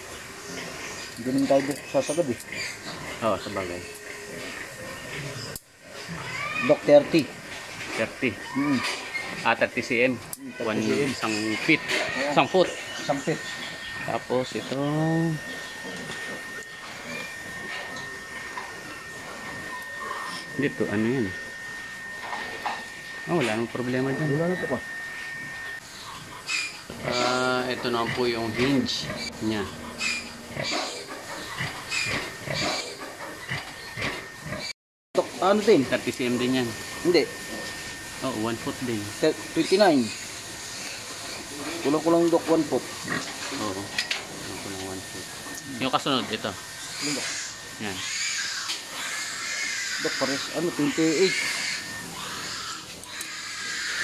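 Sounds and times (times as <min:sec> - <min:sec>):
faint high whine: 0:00.0 - 0:53.9
pigs squealing: 0:00.0 - 0:54.0
indistinct voices speaking: 0:06.3 - 0:31.7, 0:35.2 - 0:40.5, 0:50.0 - 0:51.6.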